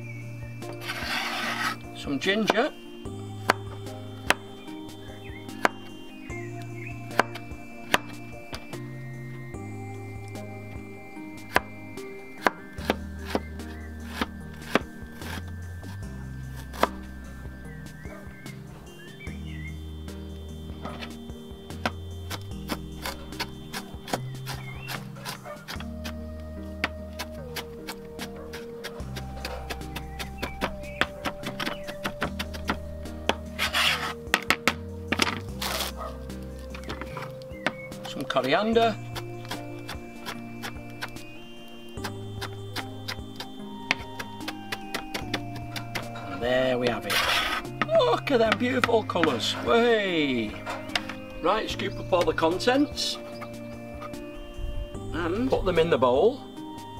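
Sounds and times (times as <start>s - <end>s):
background music: 0.0s - 56.9s.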